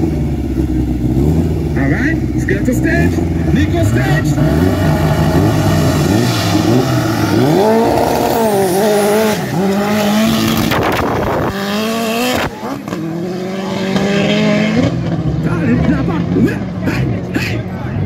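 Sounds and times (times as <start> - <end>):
racing car engine revving: 0.0 - 18.0
voices: 12.3 - 18.0.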